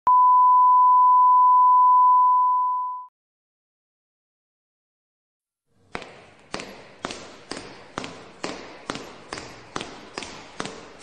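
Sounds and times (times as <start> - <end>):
steady test tone beep: 0.1 - 3.1.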